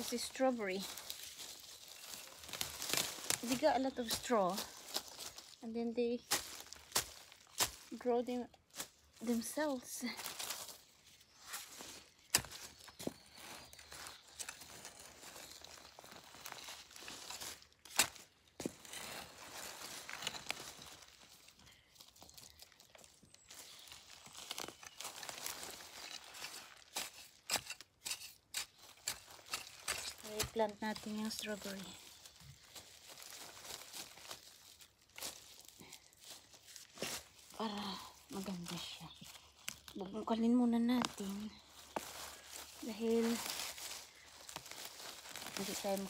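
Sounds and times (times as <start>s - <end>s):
rustling dry leaves: 0.0s - 46.0s
garden fork digging into soil: 25.9s - 31.8s.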